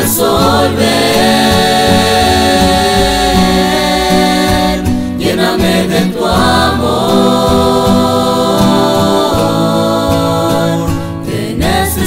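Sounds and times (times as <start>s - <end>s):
mixed choir singing: 0.0s - 12.0s
strummed acoustic guitars: 0.0s - 12.0s.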